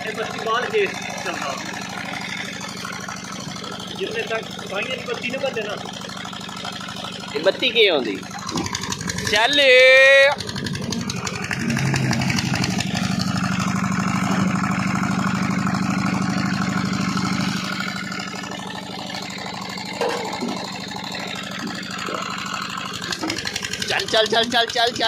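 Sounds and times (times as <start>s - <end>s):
pump engine droning: 0.0s - 25.0s.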